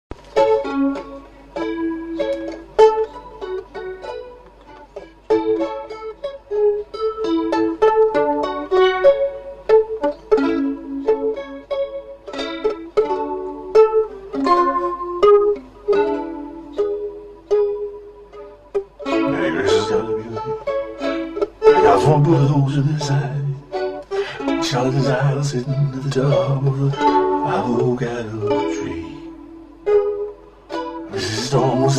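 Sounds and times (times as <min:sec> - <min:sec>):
plucked string instrument melody: 0:00.1 - 0:31.9.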